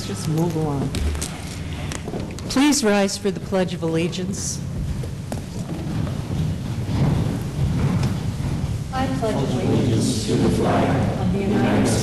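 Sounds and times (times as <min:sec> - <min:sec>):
shuffle of chairs and feet: 0:04.1 - 0:10.1.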